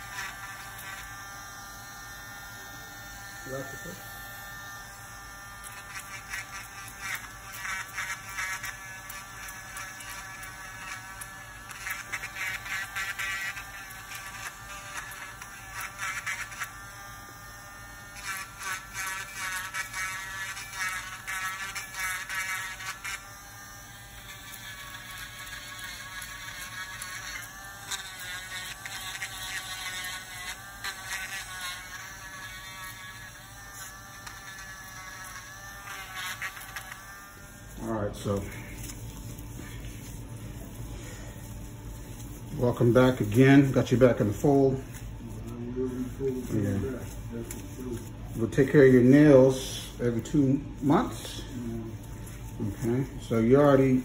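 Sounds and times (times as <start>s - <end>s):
electric nail drill whining: 0.0s - 37.9s
gritty grinding on toenail: 5.6s - 17.4s, 18.0s - 40.8s.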